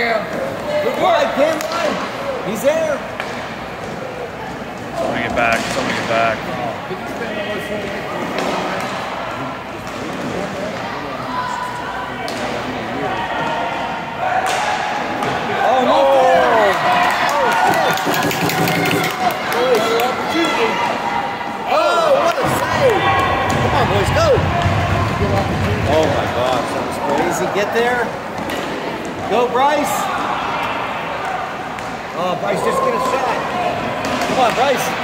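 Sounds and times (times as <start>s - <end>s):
voices in a hall: 0.0s - 35.0s
hockey sticks clacking: 3.1s - 6.2s, 7.1s - 9.1s, 17.1s - 20.1s, 28.3s - 29.3s, 31.7s - 32.0s, 34.0s - 35.0s.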